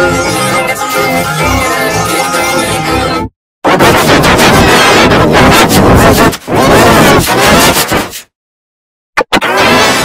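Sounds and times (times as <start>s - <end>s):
loud distorted crackling noise: 3.7s - 8.2s.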